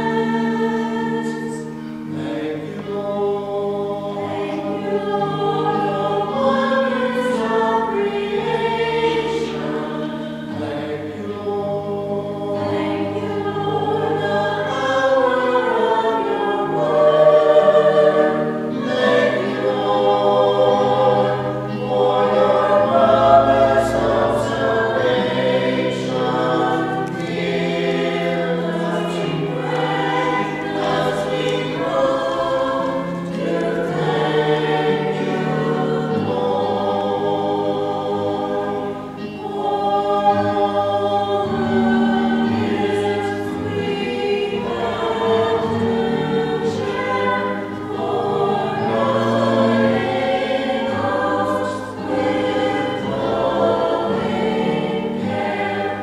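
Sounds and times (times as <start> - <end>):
choir singing in church: 0.0 - 56.0.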